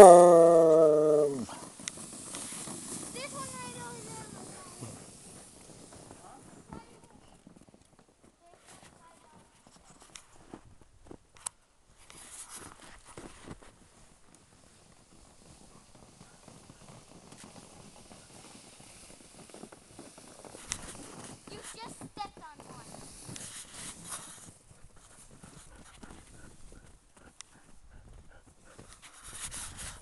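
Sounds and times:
feet and paws crunching snow: 0.1s - 11.2s, 12.0s - 30.0s.

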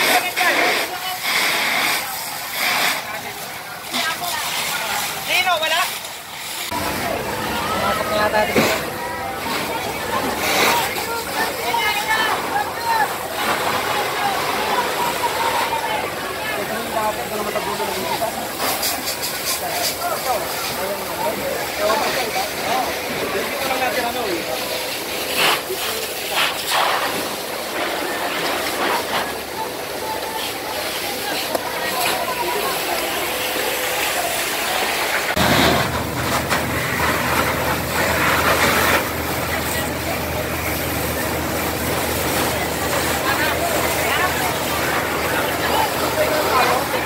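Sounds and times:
fire hose spraying water: 0.0s - 47.0s
people talking: 0.0s - 47.0s
people's voices: 0.0s - 47.0s
low engine drone: 6.4s - 47.0s.

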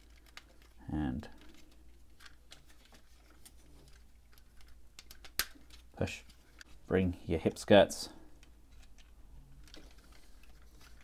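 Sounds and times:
plastic toy parts clicking: 0.0s - 0.8s, 1.4s - 6.7s, 8.4s - 11.0s.

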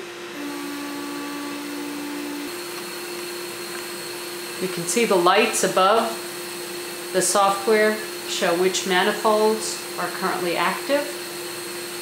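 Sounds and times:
hissing gas flow: 0.0s - 12.0s.

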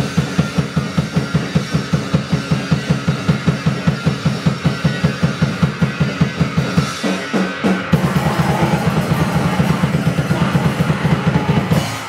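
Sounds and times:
distorted bass and synthesizer noise: 0.0s - 12.0s
very fast drum beat: 0.0s - 12.0s.

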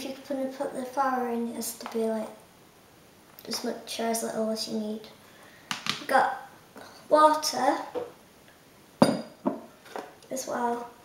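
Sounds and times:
glass jug knocking on worktop: 9.0s - 9.7s.

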